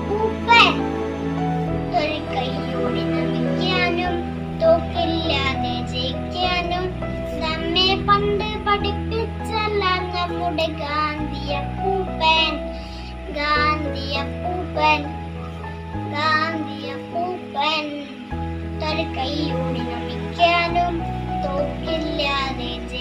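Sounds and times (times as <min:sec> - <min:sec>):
instrumental backing track: 0:00.0 - 0:23.0
boy singing: 0:01.9 - 0:12.6, 0:18.8 - 0:23.0.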